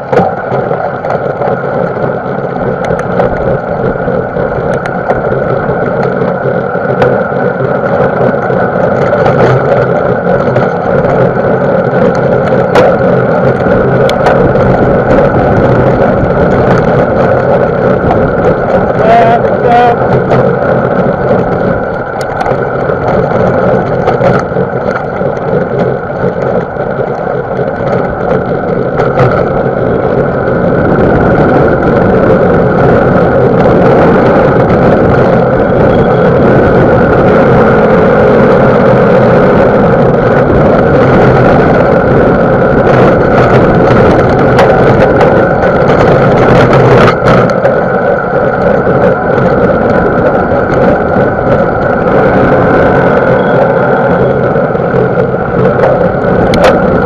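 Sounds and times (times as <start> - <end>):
bike knocks and rattles: 0.0 - 54.5
tyres rolling over dirt trail: 0.0 - 57.0
wind rushing on microphone: 0.0 - 57.0.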